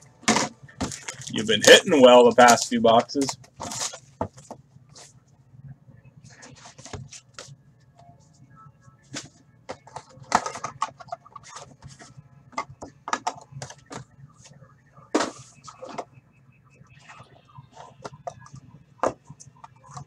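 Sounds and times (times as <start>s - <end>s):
card packs crinkling and rustling: 0.2s - 4.6s, 9.1s - 14.1s.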